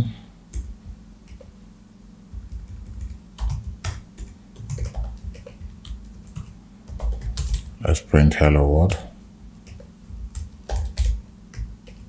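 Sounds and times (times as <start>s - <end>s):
typing on computer keyboard: 1.3s - 1.5s, 2.4s - 7.7s, 9.6s - 12.0s.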